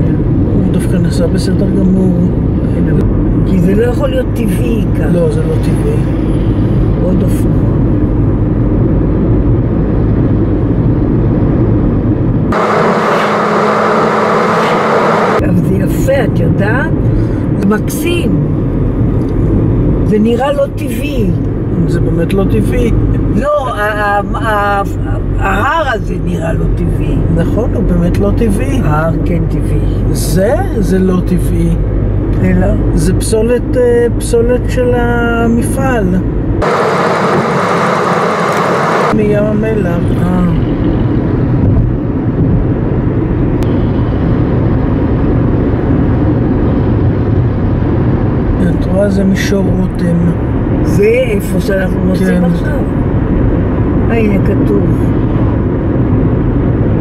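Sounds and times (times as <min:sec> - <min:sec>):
road and engine rumble in car: 0:00.0 - 0:57.0.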